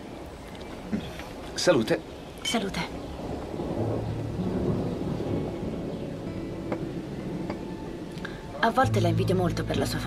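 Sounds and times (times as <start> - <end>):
distant thunder rumble: 1.8 - 10.0
soft background music: 4.2 - 10.0.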